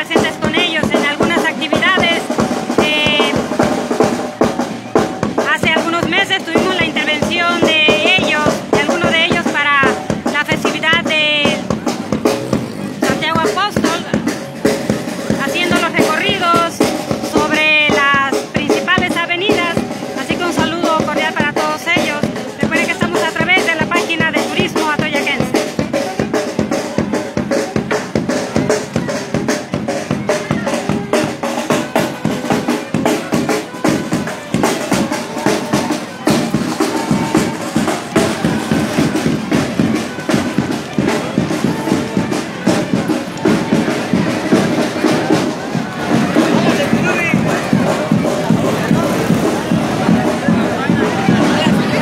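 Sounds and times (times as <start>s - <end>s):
band music: 0.0s - 52.0s
snare and bass drums marching: 0.0s - 52.0s.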